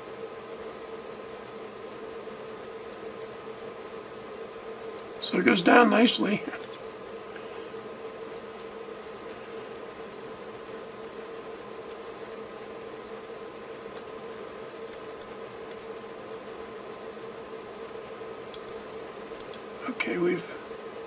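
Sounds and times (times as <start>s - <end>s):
faint hum: 0.0s - 21.0s
sharp clicks: 18.5s - 19.7s.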